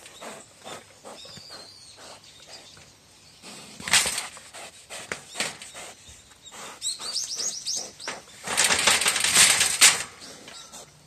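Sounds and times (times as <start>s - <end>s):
wire cage rattling: 8.4s - 10.2s.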